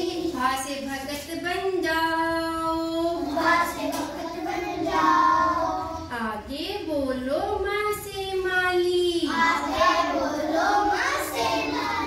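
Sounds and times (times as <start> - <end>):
children singing together: 0.0 - 0.4, 3.0 - 6.1, 9.3 - 12.0.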